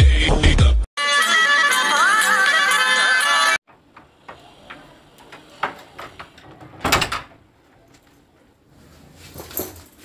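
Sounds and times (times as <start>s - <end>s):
background music: 0.0s - 3.6s.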